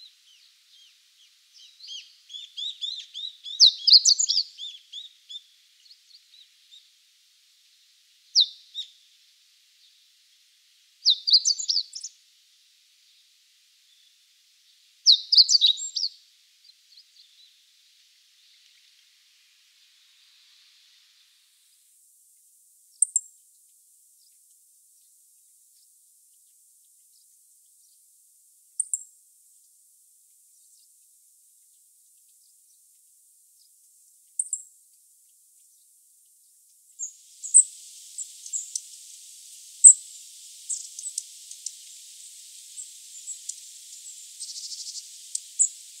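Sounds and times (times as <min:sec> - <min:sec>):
steady high hiss: 0:00.0 - 0:46.0
high chirps: 0:37.0 - 0:46.0.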